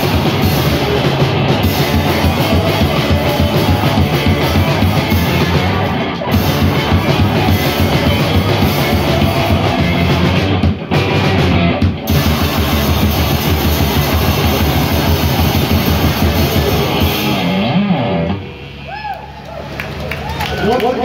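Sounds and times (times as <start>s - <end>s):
drum kit: 0.0s - 18.4s
distorted electric guitars: 0.0s - 19.0s.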